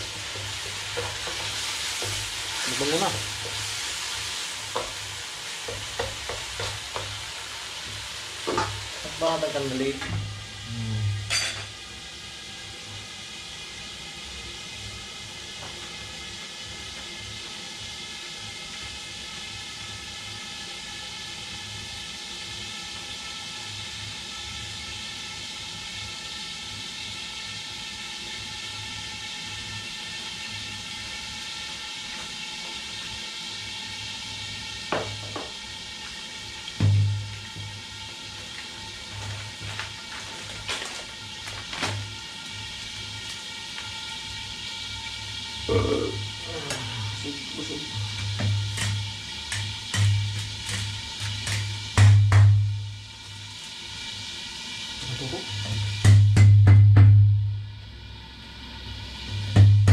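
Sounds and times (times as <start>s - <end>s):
food hissing in a wok: 0.0s - 56.7s, 57.3s - 59.9s
loud thud: 36.8s - 37.3s.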